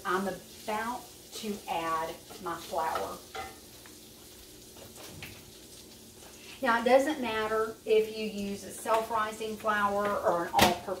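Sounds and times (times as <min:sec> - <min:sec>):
sausage sizzling in skillet: 0:00.0 - 0:11.0.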